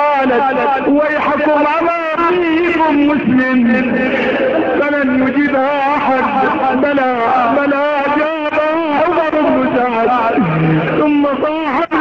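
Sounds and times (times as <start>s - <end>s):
man chanting a recitation: 0.0s - 12.0s.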